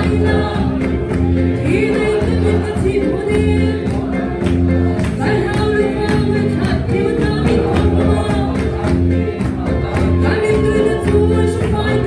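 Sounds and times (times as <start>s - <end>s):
congregation singing a hymn: 0.0s - 4.6s.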